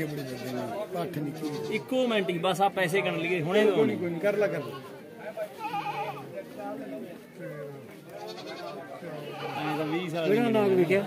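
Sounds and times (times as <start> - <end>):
goat bleating: 0.0 - 1.9, 5.6 - 6.3, 8.1 - 10.8
murmur of men's voices: 0.0 - 11.0.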